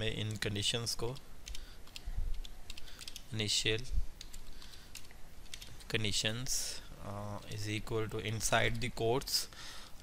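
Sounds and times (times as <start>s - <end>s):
computer keyboard keys clicking: 1.1s - 3.2s, 4.2s - 5.8s.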